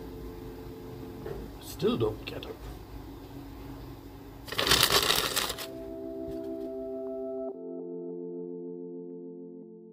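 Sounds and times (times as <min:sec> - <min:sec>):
ambient music soft chords: 0:00.0 - 0:04.4, 0:05.6 - 0:09.9.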